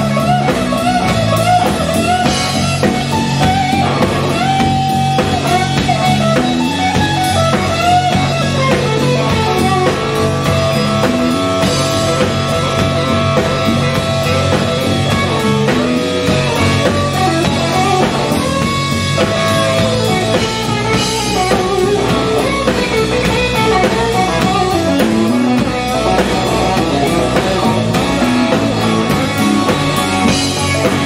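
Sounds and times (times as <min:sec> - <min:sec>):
drum kit: 0:00.0 - 0:31.0
electric bass: 0:00.0 - 0:31.0
electric guitar lead: 0:00.0 - 0:31.0.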